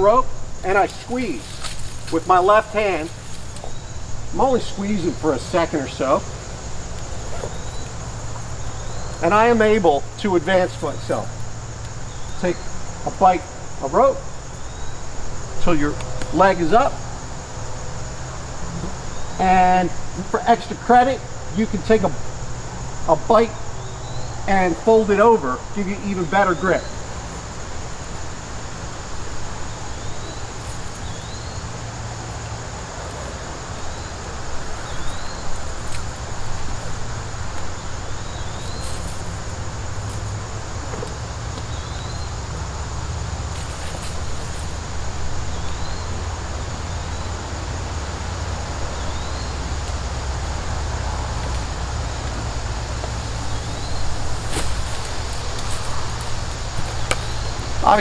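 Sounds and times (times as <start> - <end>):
high insect drone: 0.0 - 58.0.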